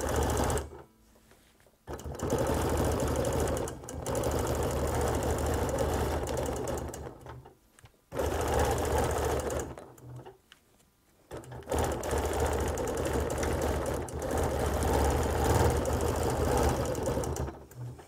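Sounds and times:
quilting machine stitching: 0:00.0 - 0:00.8, 0:01.9 - 0:07.5, 0:08.1 - 0:10.4, 0:11.3 - 0:18.0.

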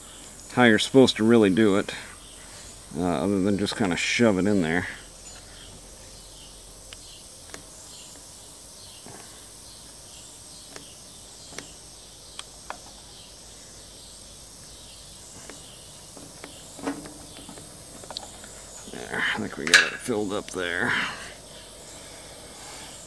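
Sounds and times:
insects chirring: 0:00.0 - 0:23.0
metal knock: 0:16.2 - 0:17.7, 0:19.6 - 0:20.1.

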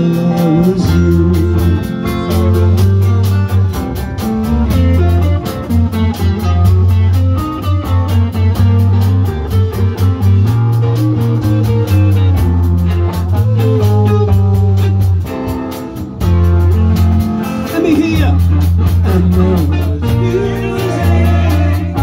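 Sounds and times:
guitar and bass: 0:00.0 - 0:22.0
steady drum beat: 0:00.0 - 0:22.0.

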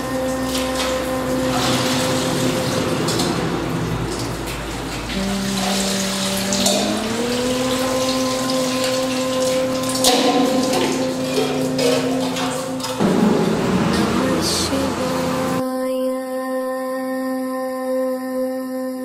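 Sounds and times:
water splashing on stone: 0:00.0 - 0:15.6
music of long held notes: 0:00.0 - 0:18.4.

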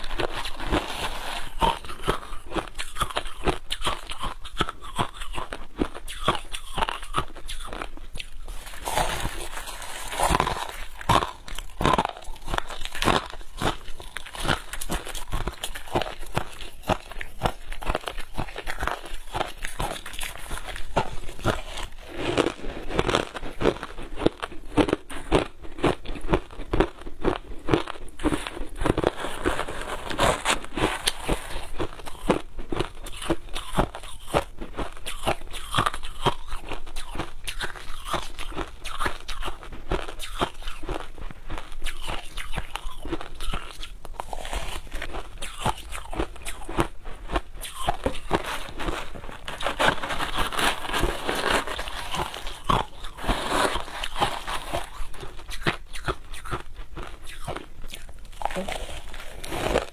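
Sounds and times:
chewing crushed ice: 0:00.0 - 0:59.9.

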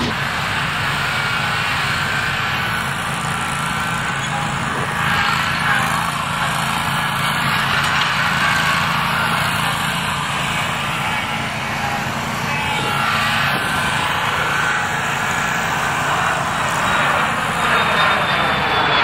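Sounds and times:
lawn mower engine running: 0:00.0 - 0:19.0.

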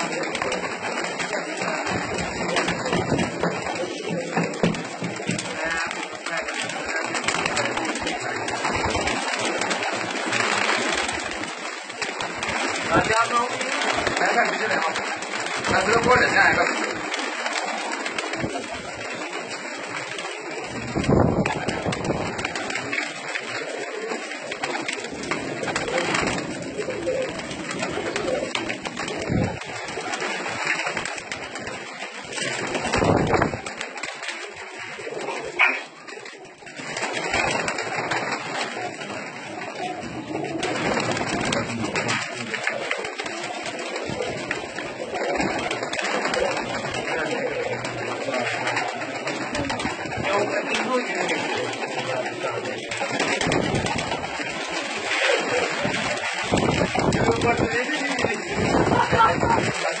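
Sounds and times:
pigeons cooing: 0:00.0 - 1:00.0.

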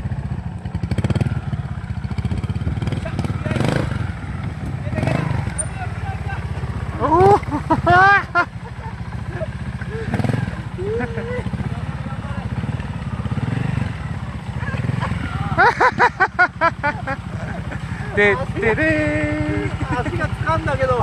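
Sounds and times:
motorcycle engine at low revs: 0:00.0 - 0:21.0
burst of laughter: 0:14.7 - 0:18.1.

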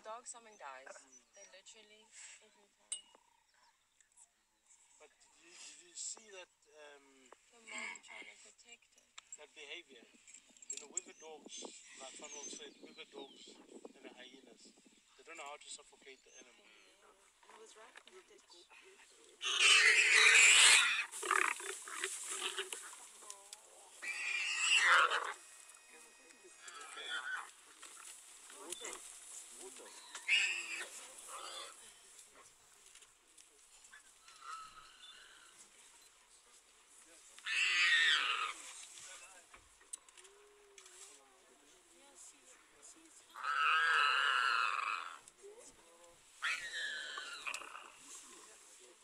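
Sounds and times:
lions snarling: 0:18.6 - 0:32.8, 0:33.8 - 0:36.0, 0:37.3 - 0:38.8, 0:42.6 - 0:48.9
animal squealing: 0:19.4 - 0:23.0, 0:24.0 - 0:27.6, 0:29.9 - 0:31.9, 0:34.2 - 0:35.6, 0:37.4 - 0:38.7, 0:43.3 - 0:45.2, 0:46.4 - 0:48.0.

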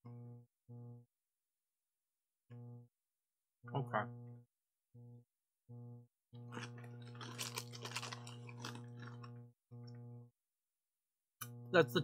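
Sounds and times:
steady low hum: 0:03.7 - 0:10.4
person chewing crunchy food: 0:06.4 - 0:10.0.

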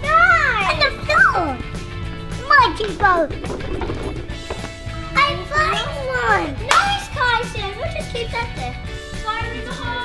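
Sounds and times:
child shouting: 0:05.2 - 0:08.1.

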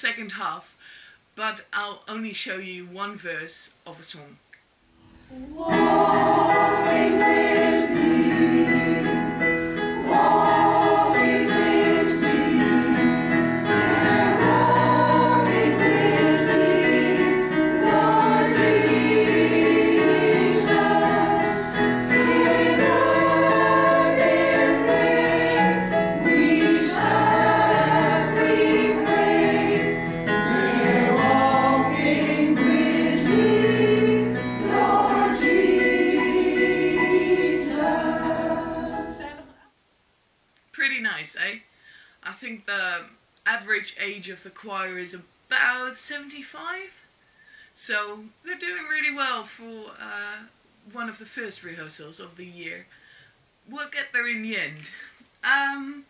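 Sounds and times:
choir singing: 0:05.3 - 0:39.7.

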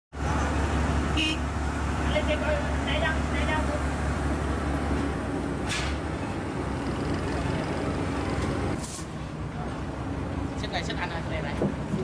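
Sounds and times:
road noise: 0:00.1 - 0:12.0
vehicle engines rumbling: 0:00.1 - 0:12.0
people talking: 0:10.6 - 0:11.7.

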